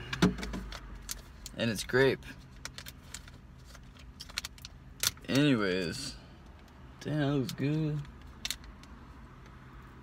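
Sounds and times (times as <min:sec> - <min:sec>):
idling car hum: 0:00.0 - 0:10.0.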